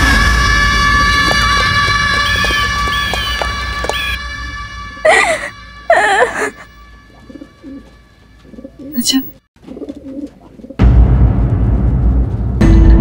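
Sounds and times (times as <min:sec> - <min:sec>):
background music: 0:00.0 - 0:09.3
woman sobbing: 0:05.0 - 0:06.7
loud drum hit: 0:10.8 - 0:13.0.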